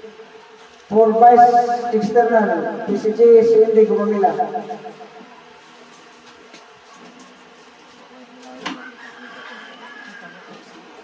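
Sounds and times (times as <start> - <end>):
faint steady hum: 0.0 - 5.9.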